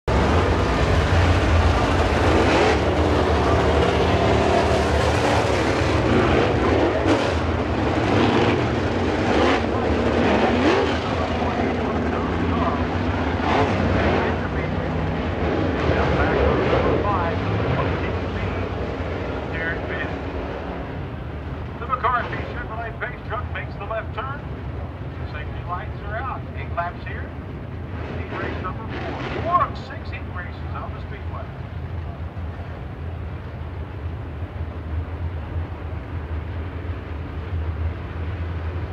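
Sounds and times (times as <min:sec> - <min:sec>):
race car engines rumbling: 0:00.0 - 0:38.9
announcer over pa: 0:08.7 - 0:18.8, 0:21.8 - 0:27.4, 0:28.0 - 0:31.6.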